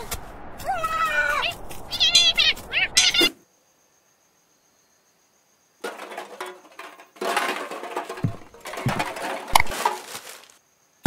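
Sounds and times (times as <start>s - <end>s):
squeaky cartoon character cries: 2.0s - 3.4s.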